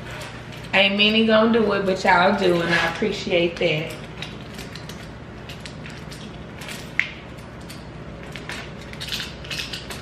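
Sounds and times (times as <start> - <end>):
mouse traps clicking and creaking: 3.6 - 10.0.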